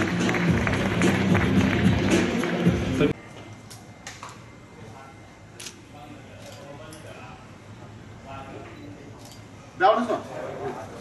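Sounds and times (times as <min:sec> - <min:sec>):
faint background chatter: 0:04.5 - 0:11.0.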